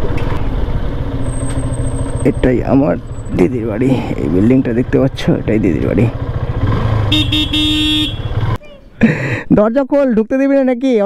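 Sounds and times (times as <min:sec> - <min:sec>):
motorcycle engine running: 0:00.0 - 0:08.6.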